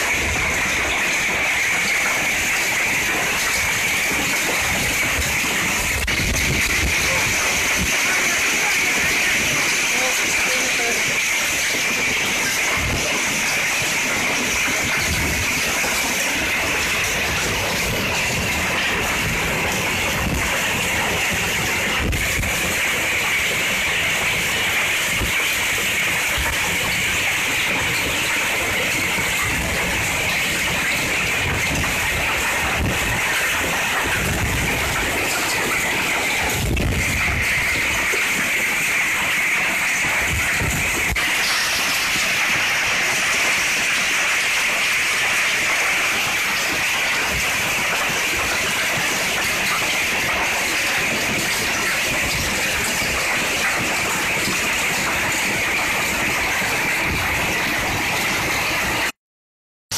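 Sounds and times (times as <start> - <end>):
heavy rain pouring: 0.0 - 59.2.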